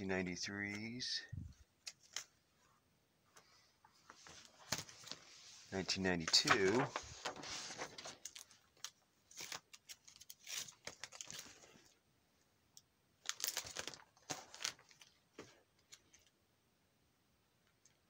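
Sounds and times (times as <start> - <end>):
plastic pages crinkling: 1.8 - 2.4, 3.9 - 12.0, 13.2 - 16.3.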